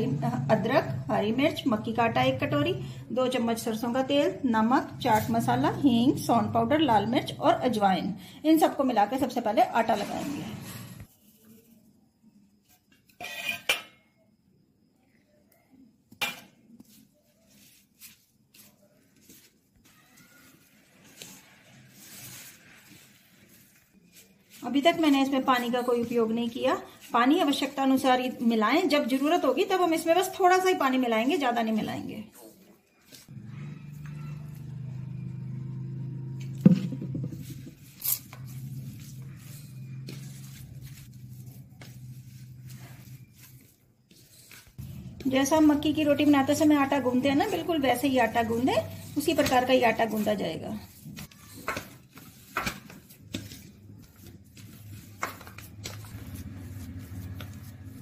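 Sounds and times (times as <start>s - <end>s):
hands mixing dough scraping: 3.2s - 8.0s, 16.2s - 58.0s.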